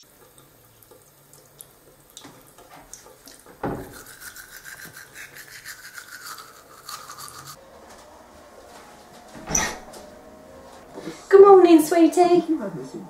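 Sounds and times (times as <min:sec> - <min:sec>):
toothbrush scrubbing teeth: 0:02.9 - 0:07.6.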